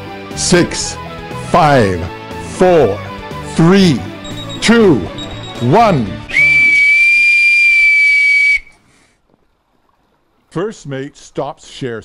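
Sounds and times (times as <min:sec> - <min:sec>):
whistle long blast: 0:06.2 - 0:08.8.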